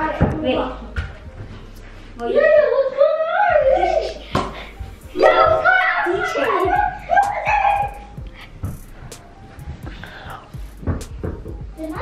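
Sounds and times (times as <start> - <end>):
child calling wordlessly: 5.1 - 8.0.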